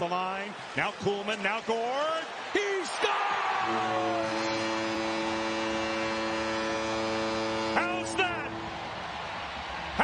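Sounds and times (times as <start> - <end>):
crowd cheering: 0.0 - 10.0
arena goal horn blaring: 3.6 - 9.0.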